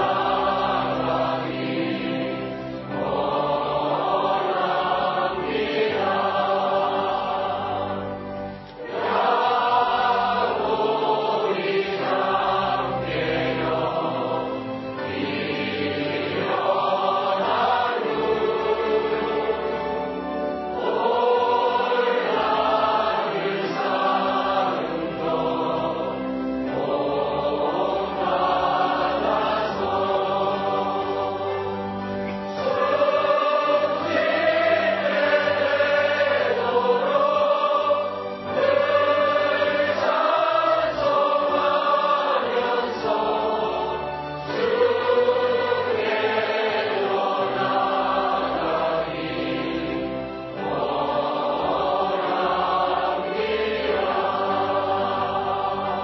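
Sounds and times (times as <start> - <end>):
choir singing a hymn: 0.0 - 56.0.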